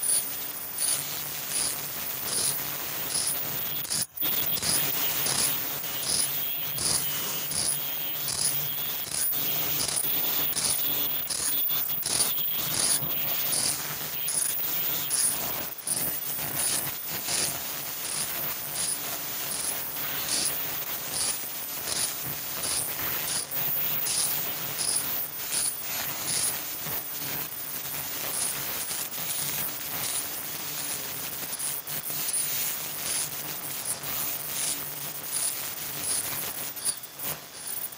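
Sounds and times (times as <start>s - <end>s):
high-pitched machine pulse: 3.1s - 17.4s.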